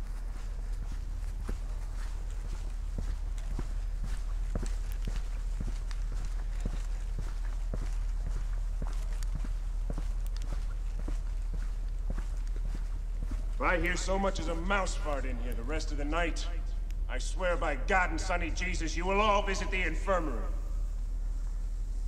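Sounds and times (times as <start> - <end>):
footsteps on grass and dirt: 0.0 - 16.1
steady low rumble: 0.0 - 22.0.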